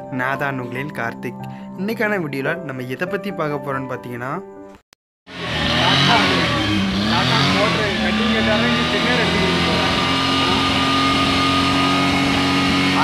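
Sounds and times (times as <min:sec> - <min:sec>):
car engine running: 0:05.3 - 0:13.0.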